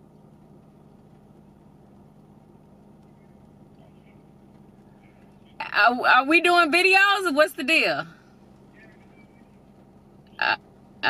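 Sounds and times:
faint car cabin hum: 0.0 - 11.0
woman saying uh: 5.6 - 8.1.

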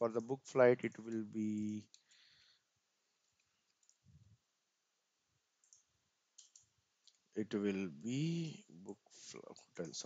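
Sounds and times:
faint computer clicks: 5.6 - 7.3.

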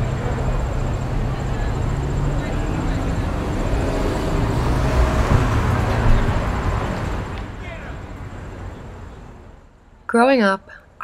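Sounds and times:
indistinct voices: 0.0 - 8.2
traffic noise: 0.0 - 11.0.

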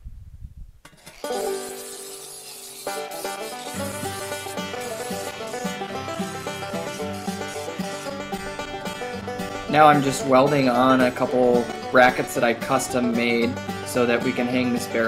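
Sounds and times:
upbeat plucked string tune: 0.9 - 15.0
steady bass line: 3.8 - 15.0.

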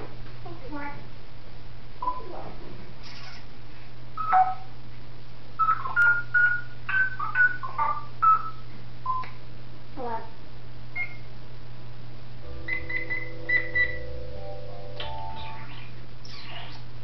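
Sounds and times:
parrot mimicking keypad beeps: 4.2 - 4.7, 5.6 - 9.2, 11.0 - 11.3, 12.7 - 14.1.

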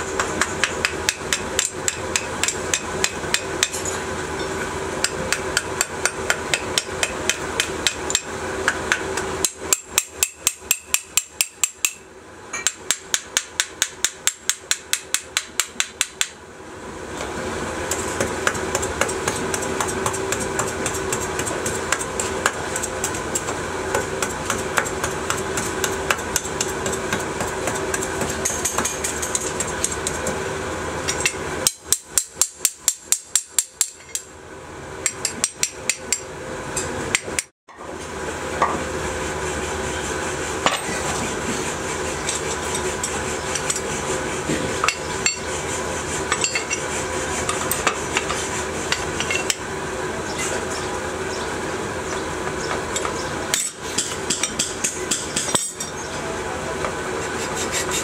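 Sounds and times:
steady mechanical hum: 0.0 - 58.0
metal tool tapping on aluminium: 12.6 - 16.3.

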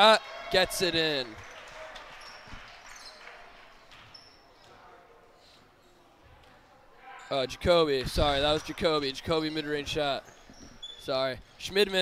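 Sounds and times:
sneakers squeaking: 1.3 - 4.8, 8.2 - 11.6.

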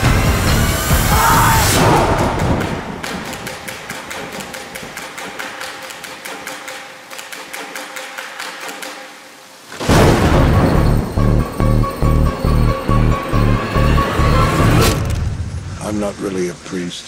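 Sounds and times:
loud hit: 9.8 - 11.7.

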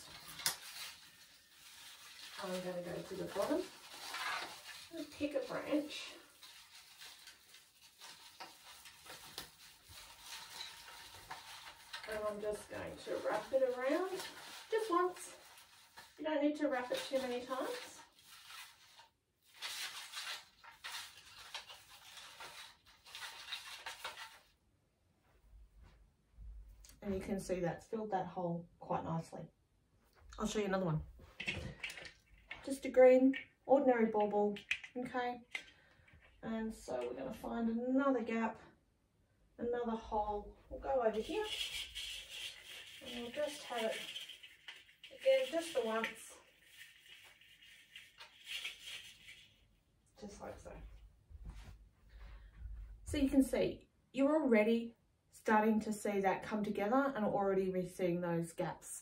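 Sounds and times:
floral wire scraping: 0.0 - 24.5, 40.3 - 49.7
rustling artificial pine branches: 0.0 - 24.6, 40.1 - 53.4.

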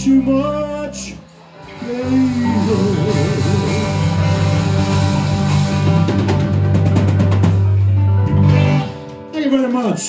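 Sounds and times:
rock band playing: 0.0 - 10.0
sliding guitar note: 1.6 - 9.0.

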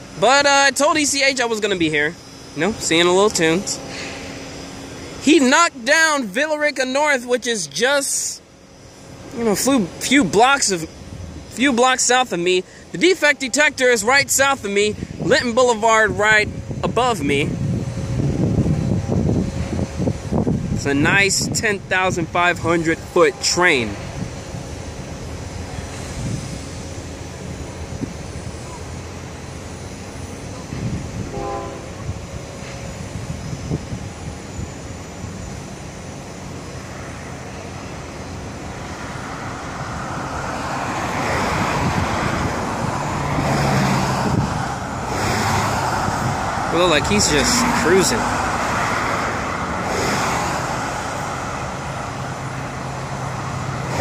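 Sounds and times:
passing cars: 0.0 - 54.0
wind buffeting microphone: 10.9 - 11.6, 14.2 - 23.1, 23.7 - 28.6, 30.2 - 35.5, 38.3 - 54.0
low engine hum: 23.7 - 54.0.

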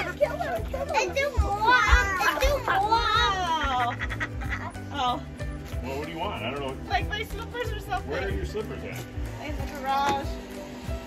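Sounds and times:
music playing: 0.0 - 11.0
children shrieking and shouting: 0.4 - 3.7.

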